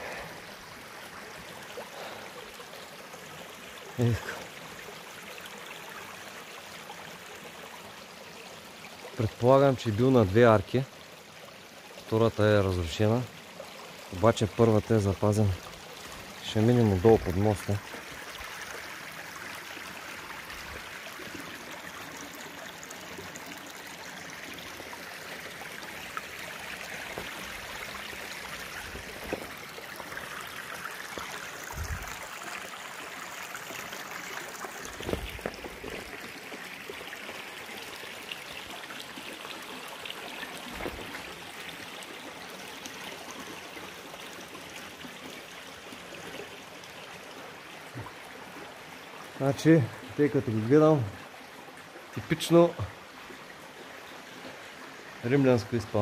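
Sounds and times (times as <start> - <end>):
stream running over rocks: 0.0 - 56.0.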